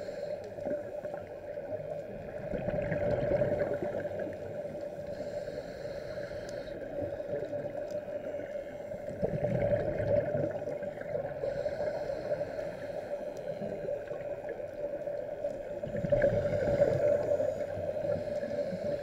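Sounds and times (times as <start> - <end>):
divers breathing through regulators: 0.0 - 0.9, 3.6 - 9.2, 11.2 - 14.2, 16.2 - 19.0
bubbles gurgling underwater: 2.1 - 4.5, 9.1 - 11.4, 15.8 - 17.3.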